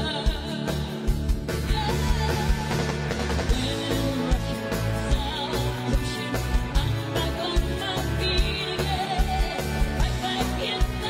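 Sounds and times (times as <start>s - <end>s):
drum kit beats: 0.0s - 11.0s
guitar: 0.0s - 11.0s.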